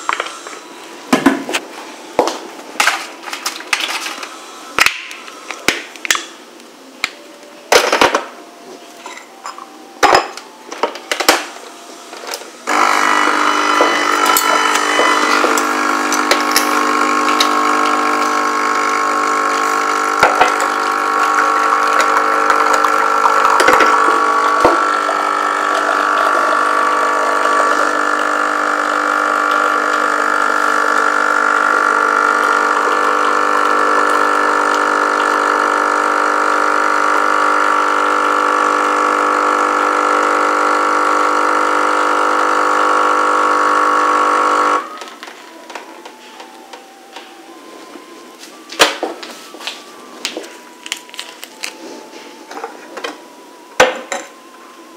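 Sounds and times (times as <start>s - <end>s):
coffee machine pump humming: 12.6s - 45.1s.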